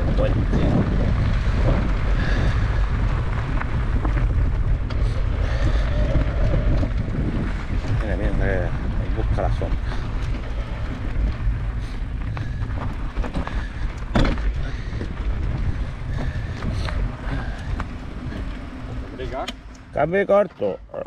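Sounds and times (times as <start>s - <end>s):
rattles and clicks: 0.0s - 20.0s
bike tyres rumbling on stones: 0.0s - 20.7s.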